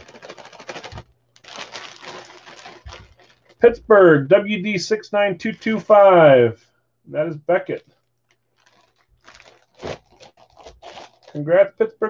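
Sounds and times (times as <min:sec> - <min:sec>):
plastic bag crinkling: 0:00.0 - 0:03.8, 0:07.8 - 0:11.7.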